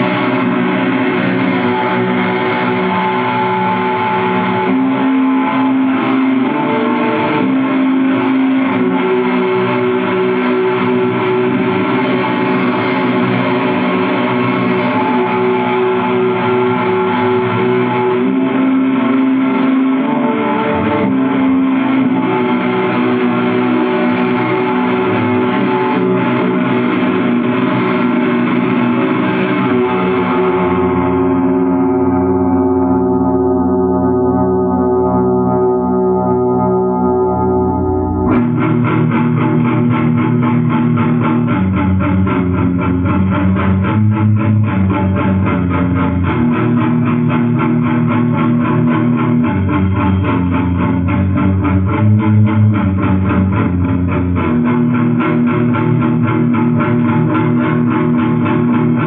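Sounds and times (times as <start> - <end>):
metal band playing: 0.0 - 33.1, 36.6 - 59.0
distorted electric guitar: 0.0 - 59.0.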